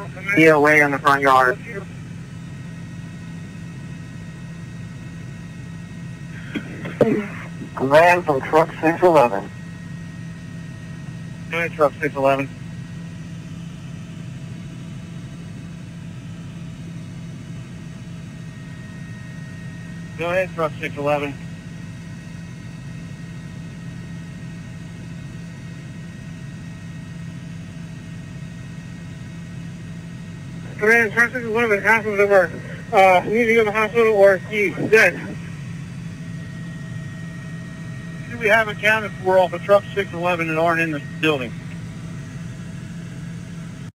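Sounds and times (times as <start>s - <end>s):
radio hum and hiss: 0.0s - 43.9s.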